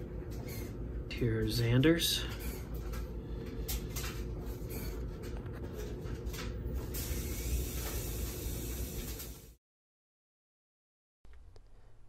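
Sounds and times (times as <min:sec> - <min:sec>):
low steady hum: 0:00.0 - 0:08.8.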